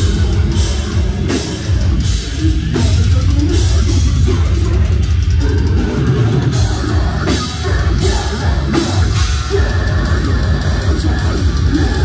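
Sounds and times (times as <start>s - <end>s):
distorted low guitars and bass: 0.0s - 12.0s
drum kit: 0.0s - 12.0s.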